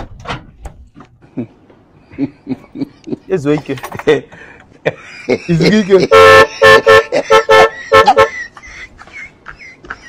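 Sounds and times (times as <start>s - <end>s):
auto-rickshaw horn tooting: 6.0s - 8.4s.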